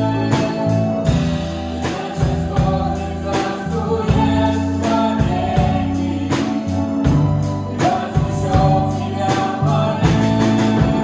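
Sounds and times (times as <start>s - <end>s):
drum kit with cymbal hits: 0.0s - 11.0s
keyboard: 0.0s - 11.0s
people singing in harmony: 0.0s - 11.0s.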